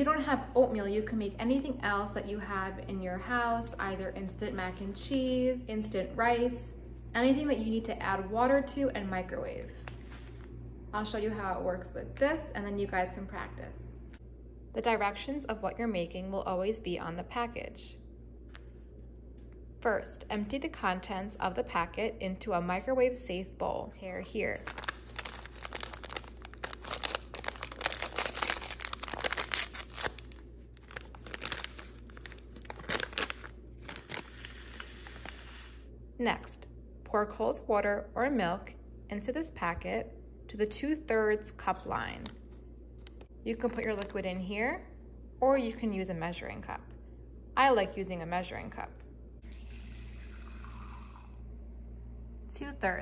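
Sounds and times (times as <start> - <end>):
paper packet tearing and crinkling: 24.6 - 35.8
faucet water running into cup: 49.5 - 51.4.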